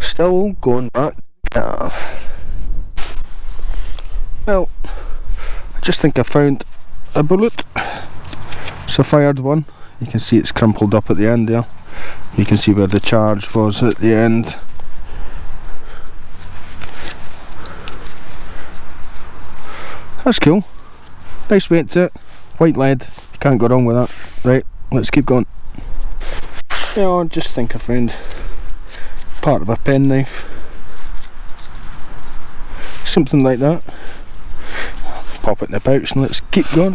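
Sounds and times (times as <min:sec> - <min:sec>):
brief rustles: 0:06.6 - 0:08.9, 0:13.8 - 0:20.2, 0:25.7 - 0:27.1
microphone jolt: 0:26.2 - 0:27.0.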